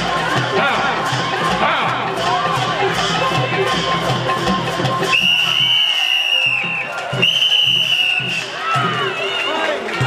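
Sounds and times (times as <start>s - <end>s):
crowd noise: 0.0s - 10.0s
drum-driven ring music: 0.0s - 10.0s
whistle blasts: 5.0s - 9.6s.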